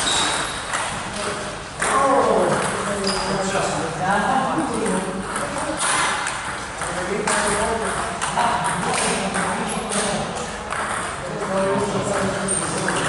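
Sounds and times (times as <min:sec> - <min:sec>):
table tennis ball clicking: 0:04.8 - 0:11.6.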